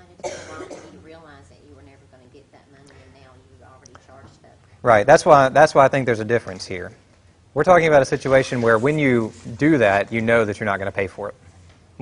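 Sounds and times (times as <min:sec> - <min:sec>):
person clearing throat: 0:00.2 - 0:01.0.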